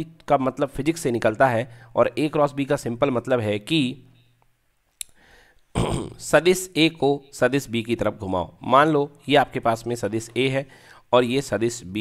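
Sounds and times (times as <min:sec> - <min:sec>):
man speaking: 0:00.0 - 0:04.2, 0:05.8 - 0:12.0.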